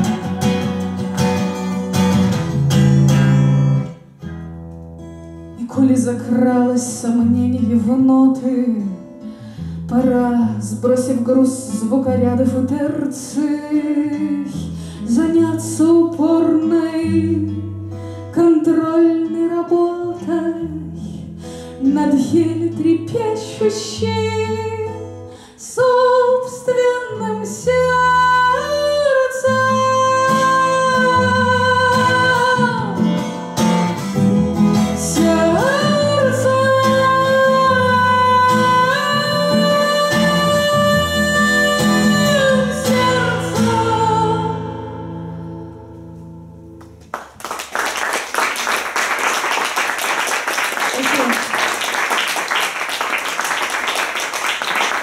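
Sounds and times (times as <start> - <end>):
strummed acoustic guitar: 0.0 - 25.4, 26.2 - 47.1
woman singing long notes: 35.0 - 45.0
audience applause: 47.1 - 55.0.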